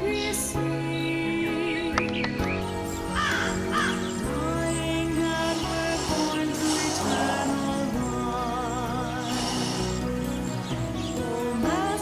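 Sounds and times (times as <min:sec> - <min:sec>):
crow cawing: 0:03.1 - 0:04.2.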